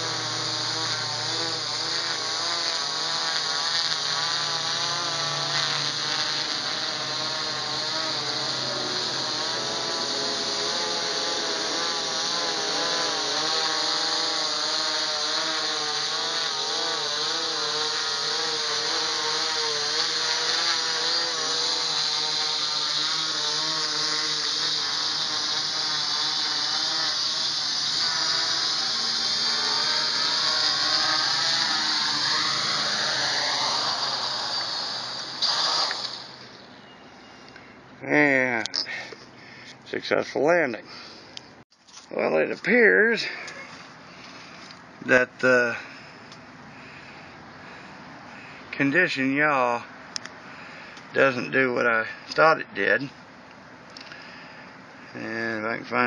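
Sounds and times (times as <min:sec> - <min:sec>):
quadcopter propellers whining: 0:00.0 - 0:40.1, 0:42.3 - 0:52.7.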